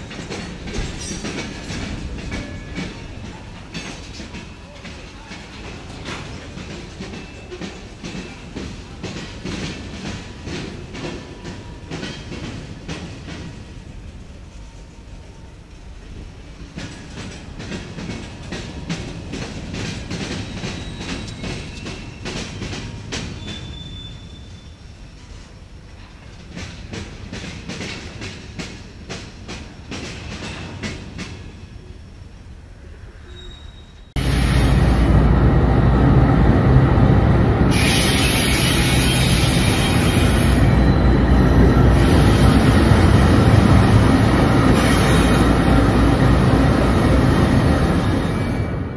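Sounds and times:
train wheels clacking: 0.0 - 13.8, 15.7 - 24.6, 25.2 - 31.6
diesel locomotive close by: 0.0 - 48.9
train rolling rumble: 0.0 - 48.9.

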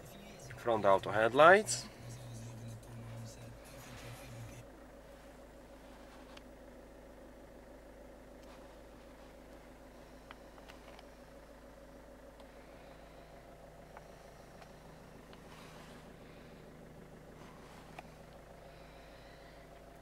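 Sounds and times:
faint car cabin hum: 0.0 - 20.0.

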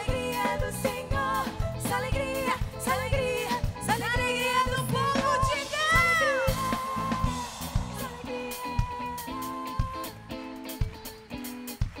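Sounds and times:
drum kit beat: 0.0 - 12.0
live band music: 0.0 - 12.0.

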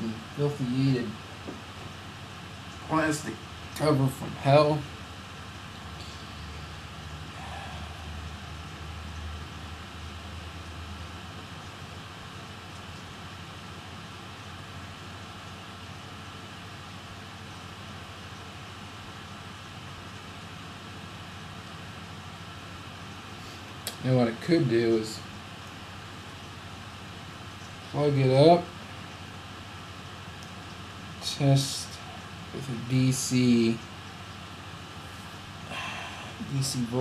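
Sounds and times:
low hum: 0.0 - 37.0
ventilation fan hum and hiss: 0.0 - 37.0.

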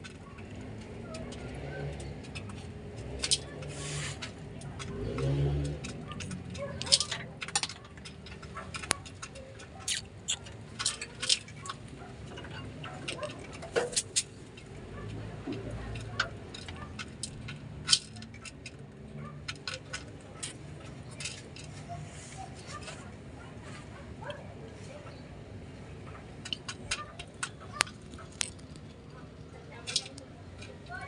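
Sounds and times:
beaks clicking on seeds and bowl: 5.2 - 11.8.

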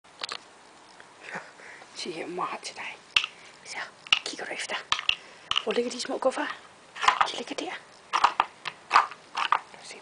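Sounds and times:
person speaking softly: 9.7 - 10.0.

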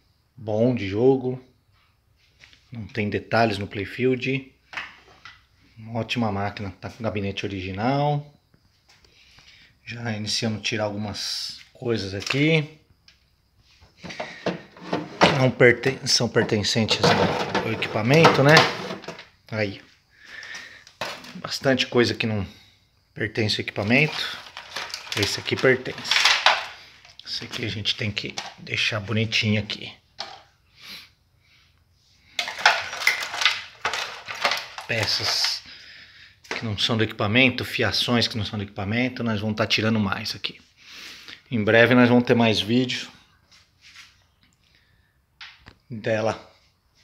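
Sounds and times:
parts knocking and rattling: 14.0 - 19.4, 20.8 - 21.6, 23.8 - 28.8, 30.2 - 30.5, 32.3 - 35.7.

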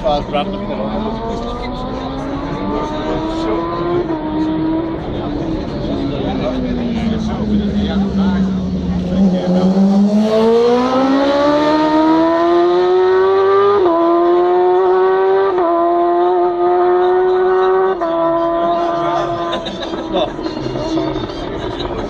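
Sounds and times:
motorcycle engine at speed: 0.2 - 22.0.

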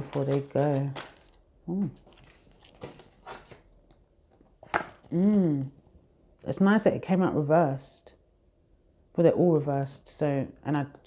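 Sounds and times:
card rustling: 0.0 - 5.7.

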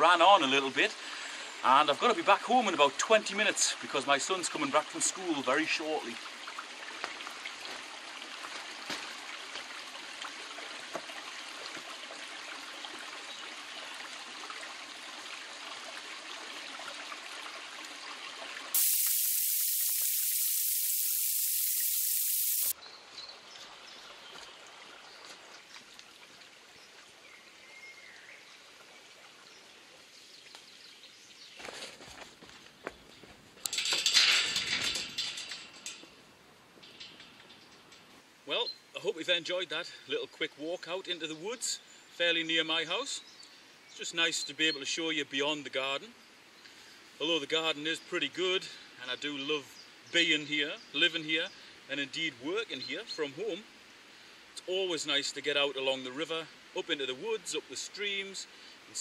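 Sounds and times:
hissing waterfall splash: 18.7 - 22.8
loud burst of noise: 18.8 - 22.7.

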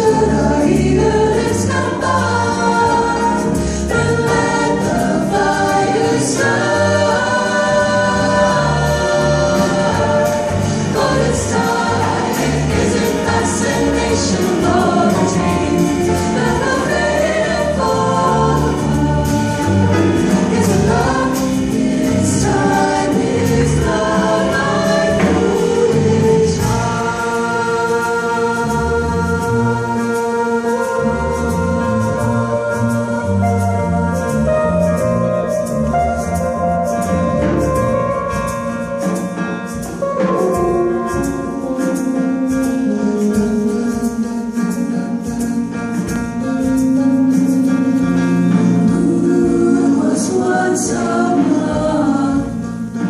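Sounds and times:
jazz choir singing harmony: 0.0 - 53.0
plucked upright bass: 0.0 - 53.0.

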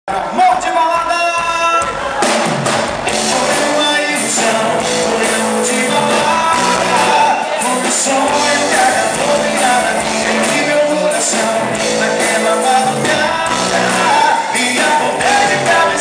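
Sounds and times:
drums: 0.1 - 16.0
bass guitar: 1.8 - 16.0
electric guitars: 2.6 - 16.0
keyboard: 3.1 - 16.0
man singing lead vocals: 3.1 - 16.0.

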